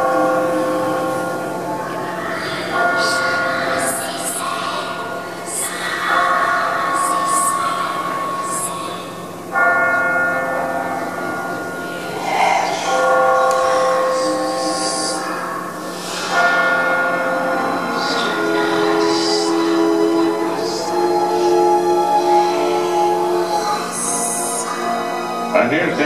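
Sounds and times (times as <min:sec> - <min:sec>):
deep bells tolling: 0:00.0 - 0:26.0.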